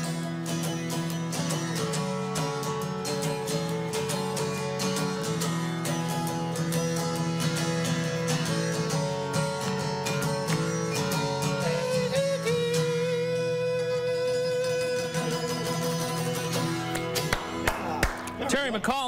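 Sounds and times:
acoustic guitar strumming chords: 0:00.0 - 0:19.0.

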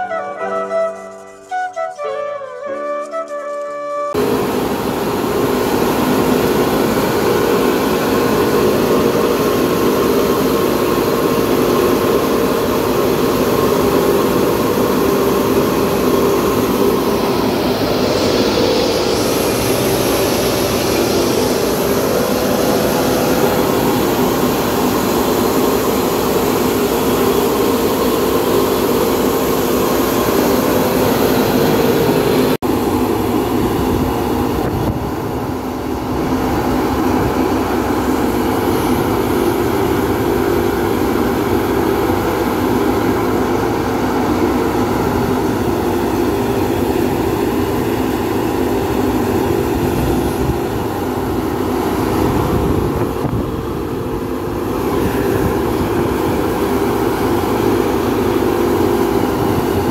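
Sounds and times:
threshing machine droning: 0:03.1 - 0:59.9.

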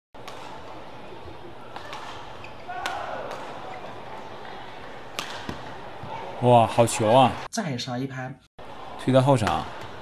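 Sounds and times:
racket striking shuttlecock: 0:00.2 - 0:00.6, 0:01.7 - 0:03.6, 0:05.1 - 0:05.7.

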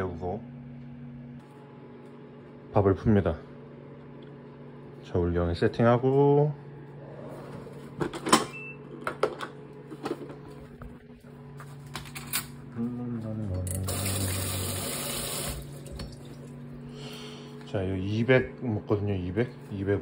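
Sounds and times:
tap water running into sink: 0:13.7 - 0:16.6.

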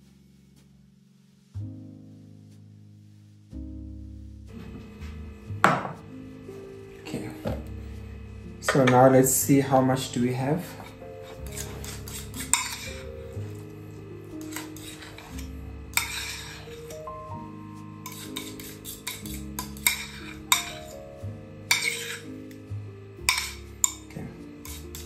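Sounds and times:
background music: 0:00.0 - 0:25.0
metal fork scraping bowl: 0:10.7 - 0:13.7, 0:14.3 - 0:17.1, 0:18.0 - 0:21.0, 0:21.7 - 0:22.4, 0:23.3 - 0:25.0.

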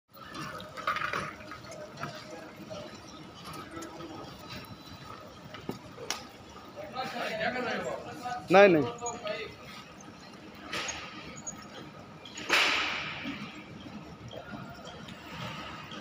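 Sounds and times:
people talking in background: 0:00.2 - 0:16.0.

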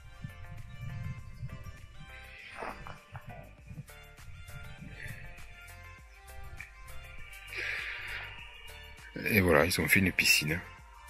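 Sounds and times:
background music with sustained notes: 0:00.0 - 0:11.0.

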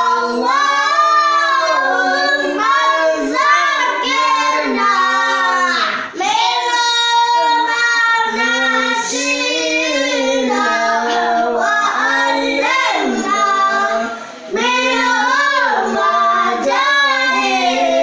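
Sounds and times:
children and man singing: 0:00.0 - 0:18.0.

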